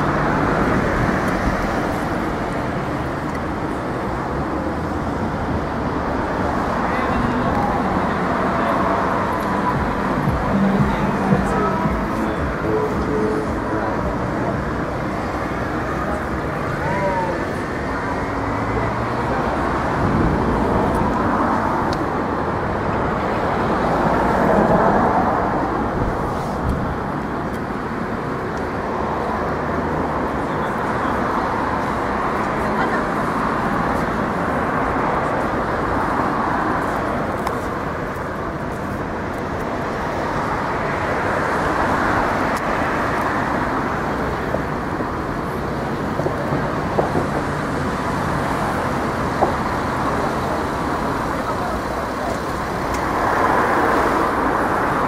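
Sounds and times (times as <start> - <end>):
people's voices: 0.0 - 55.0
traffic: 0.0 - 55.0.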